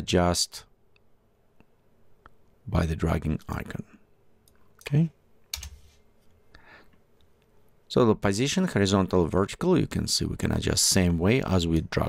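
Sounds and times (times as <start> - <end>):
keyboard keystrokes: 5.5 - 5.9.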